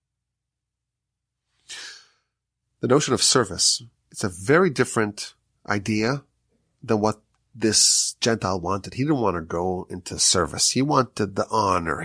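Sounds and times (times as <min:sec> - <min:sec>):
man's intake of breath: 0:01.5 - 0:02.4
man speaking: 0:02.8 - 0:12.0.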